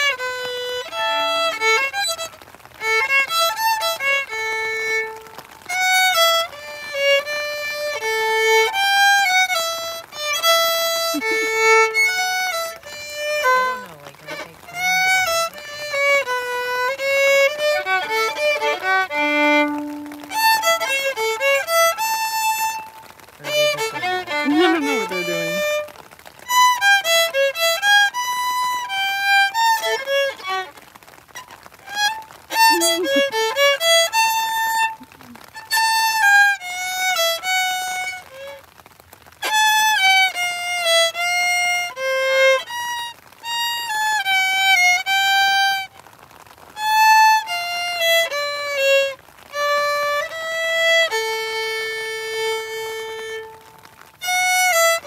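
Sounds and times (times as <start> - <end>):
solo violin melody: 0.0 - 55.0.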